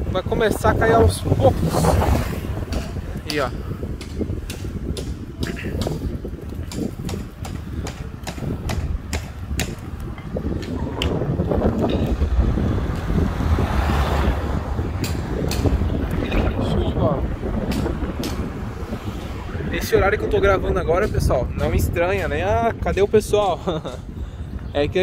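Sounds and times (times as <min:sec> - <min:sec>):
wind buffeting microphone: 0:00.0 - 0:25.0
car driving by: 0:12.1 - 0:15.9.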